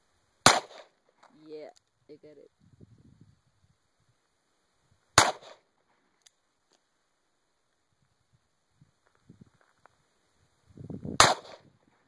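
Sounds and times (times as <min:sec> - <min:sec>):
revolver gunshot with echo: 0:00.4 - 0:00.9, 0:05.2 - 0:05.6, 0:11.2 - 0:11.7.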